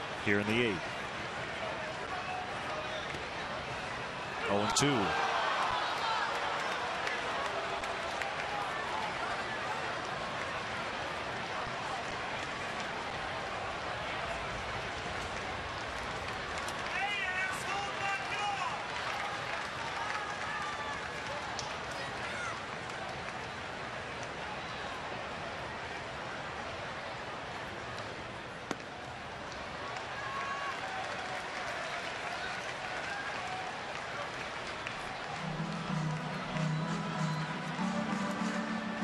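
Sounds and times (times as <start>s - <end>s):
crowd voices din: 35.0s - 39.0s.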